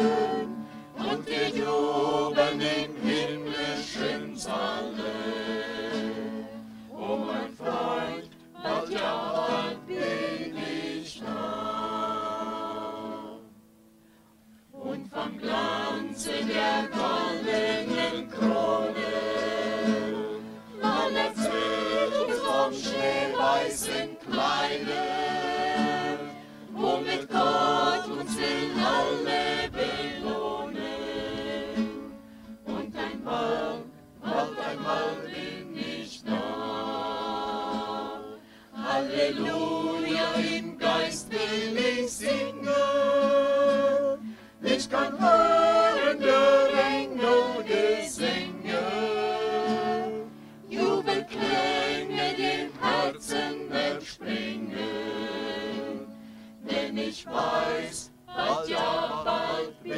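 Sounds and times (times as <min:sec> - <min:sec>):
choir singing a hymn: 0:00.0 - 0:13.6, 0:14.7 - 0:59.9
acoustic guitar: 0:00.0 - 0:59.9.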